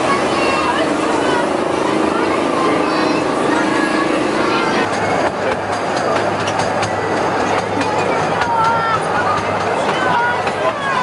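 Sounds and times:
ride train low hum: 0.0s - 11.0s
wheels clicking on track: 0.0s - 11.0s.

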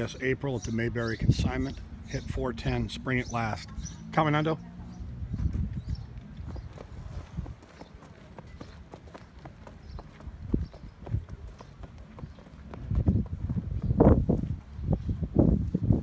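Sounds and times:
horse hooves clip-clopping on gravel: 6.1s - 14.0s.

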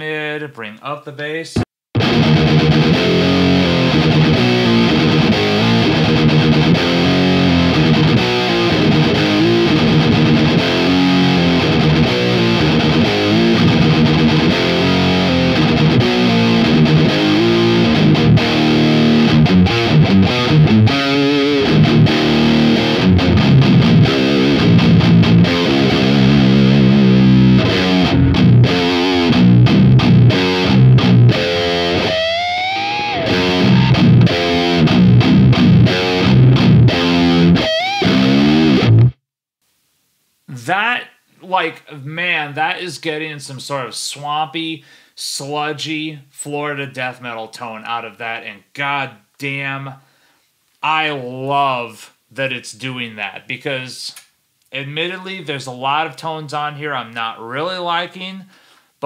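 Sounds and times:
distorted electric guitar riffs: 1.6s - 39.2s.

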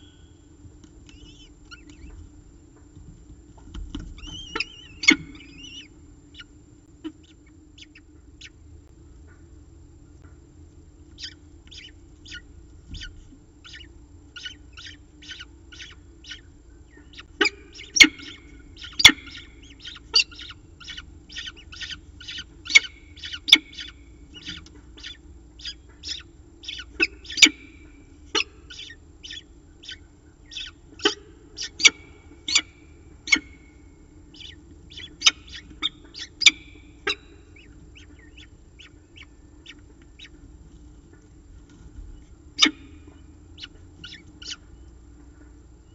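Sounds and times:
falcon chick high chirps: 1.1s - 2.2s, 4.2s - 8.6s, 11.1s - 40.4s, 42.2s - 45.0s.

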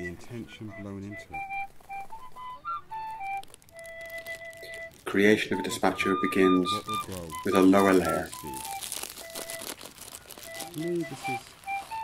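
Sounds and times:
faint background melody: 0.0s - 12.0s
plastic bag crinkling: 1.3s - 12.0s.

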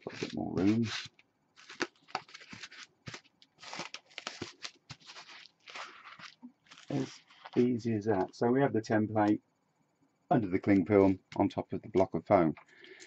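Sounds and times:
cling film rustling and crinkling: 0.0s - 7.7s.

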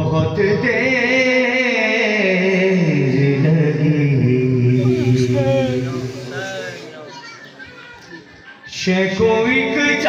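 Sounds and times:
man chanting a lament: 0.0s - 6.9s, 8.7s - 10.0s.

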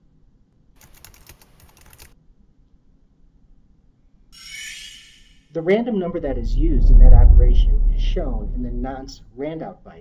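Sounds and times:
computer keyboard typing: 0.8s - 2.2s.

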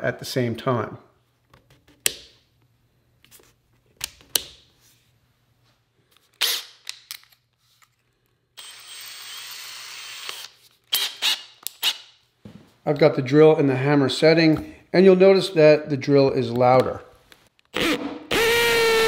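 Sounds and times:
drill motor running: 8.6s - 11.4s, 17.8s - 19.0s.

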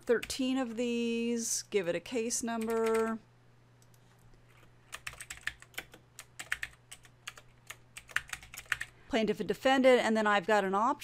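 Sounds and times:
computer keyboard typing: 2.5s - 3.1s, 3.8s - 8.9s.

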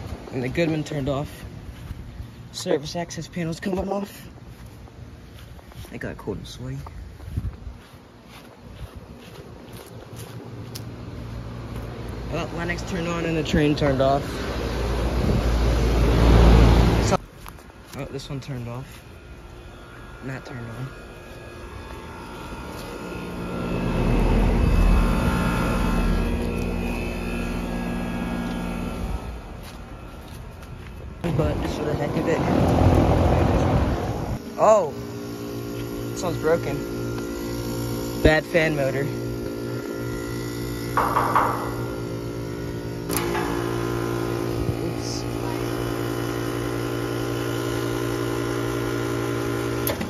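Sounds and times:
air conditioning units humming: 0.0s - 50.0s
wind rumbling on microphone: 6.9s - 7.8s, 15.0s - 16.1s, 31.2s - 34.4s
thump: 41.0s - 41.7s.

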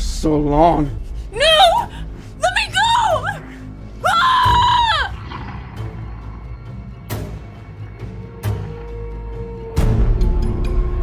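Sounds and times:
low background music: 0.0s - 11.0s
woman screaming: 1.4s - 5.4s.

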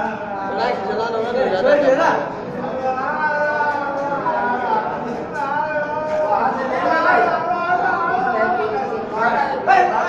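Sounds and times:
people talking at once: 0.0s - 10.0s.

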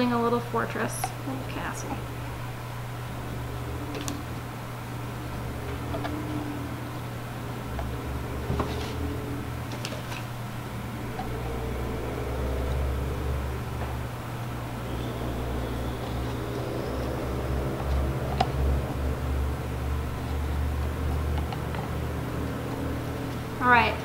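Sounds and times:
low background hum: 0.0s - 24.0s.

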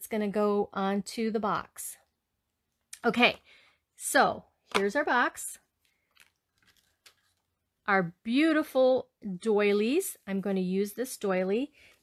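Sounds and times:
woman speaking: 0.0s - 2.0s, 3.0s - 3.4s, 4.0s - 5.7s, 7.8s - 11.8s
plastic box crinkling: 6.0s - 7.5s.

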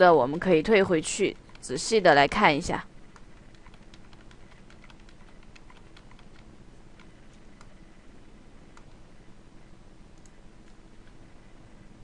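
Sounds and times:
low steady hiss: 0.0s - 12.0s
mouse and keyboard clicking: 1.3s - 1.7s, 3.1s - 7.8s.

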